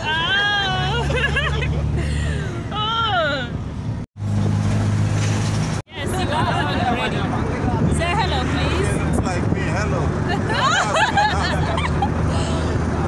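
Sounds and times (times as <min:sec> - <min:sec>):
woman laughing and exclaiming: 0:00.0 - 0:03.5
car engine and road drone: 0:00.0 - 0:13.0.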